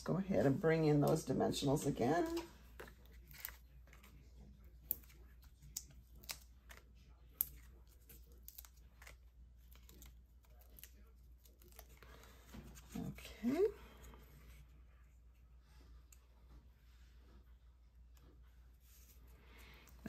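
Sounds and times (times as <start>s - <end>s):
foam dots peeling and rustling: 2.1s - 13.7s.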